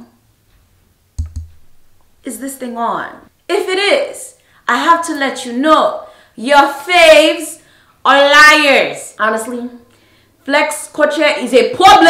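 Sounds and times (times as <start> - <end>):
microphone taps: 1.2 - 2.2.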